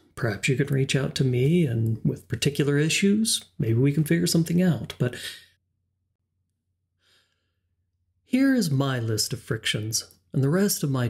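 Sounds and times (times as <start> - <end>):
faint breath: 7.0 - 7.7.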